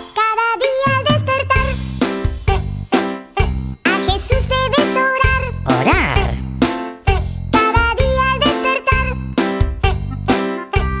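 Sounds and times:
upbeat children's song music: 0.0 - 11.0.

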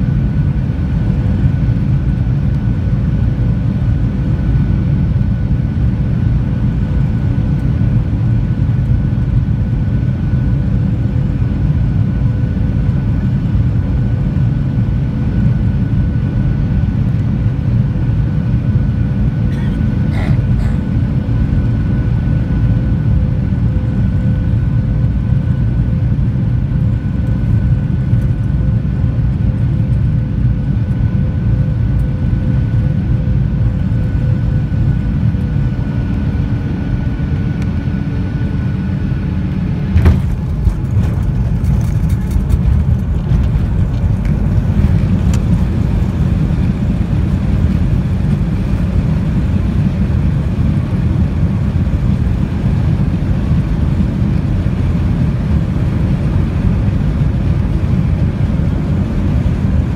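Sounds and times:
jet engine drone with whine: 0.0 - 59.9
plane rattling rumble on runway: 0.0 - 59.9
touchdown thump: 39.9 - 41.3.

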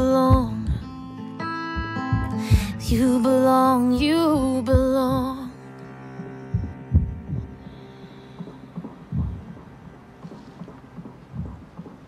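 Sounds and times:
low dull thumps: 0.0 - 1.0, 1.8 - 3.1, 4.7 - 5.5, 6.5 - 7.8, 8.4 - 12.0
faint steady hum: 0.0 - 12.0.

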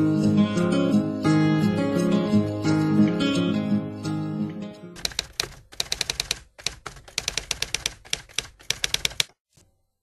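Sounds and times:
typewriter key clacks: 5.0 - 9.3.

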